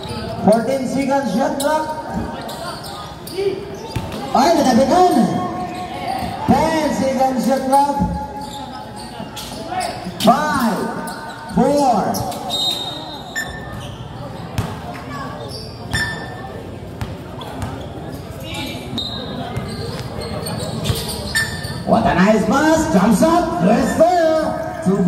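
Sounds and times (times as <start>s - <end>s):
basketball bouncing on hard court: 14.5s - 15.0s, 16.9s - 17.9s.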